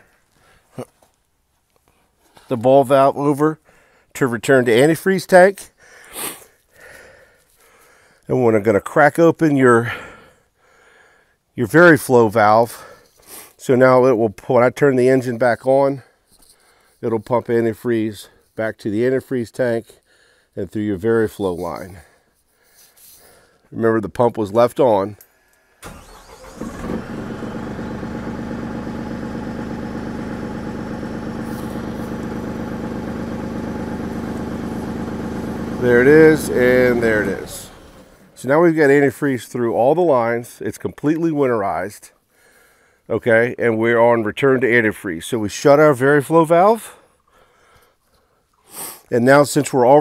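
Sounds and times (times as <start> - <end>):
man breathing in: 3.6 - 4.1, 5.8 - 8.2, 9.9 - 11.4, 20.1 - 20.5, 42.3 - 43.1, 47.0 - 49.1
diesel engine cranking and idling: 25.8 - 39.0.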